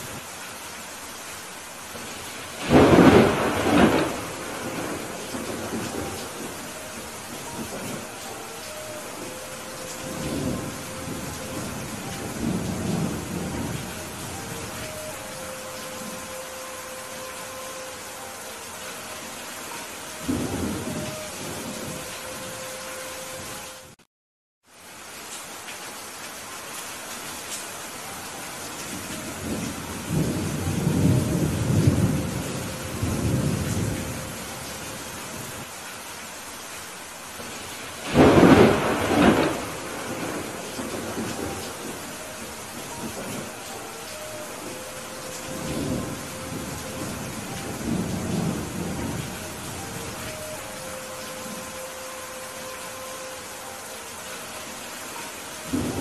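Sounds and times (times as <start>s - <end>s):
heavy rain: 0.0s - 56.0s
rolling thunder: 2.0s - 8.2s, 9.1s - 14.9s, 37.4s - 51.6s.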